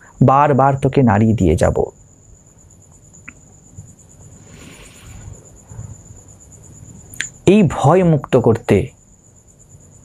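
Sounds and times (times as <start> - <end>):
cricket trilling: 0.0 - 10.0.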